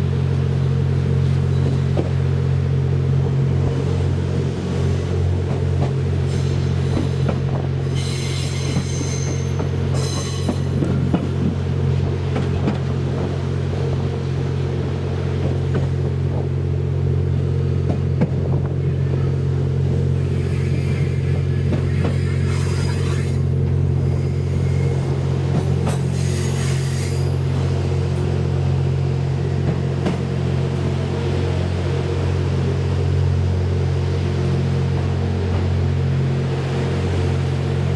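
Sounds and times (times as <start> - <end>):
train engine and wheels drone: 0.0 - 37.9
wheel squeals: 7.8 - 10.8, 20.2 - 25.1.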